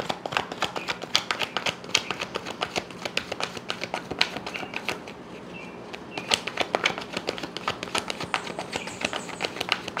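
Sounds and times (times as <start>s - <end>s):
cards being shuffled by hand: 0.0s - 10.0s.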